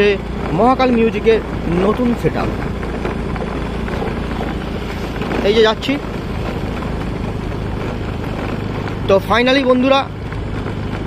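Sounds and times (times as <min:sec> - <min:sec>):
motorcycle engine running: 0:00.0 - 0:11.0
road and wind noise: 0:00.0 - 0:11.0.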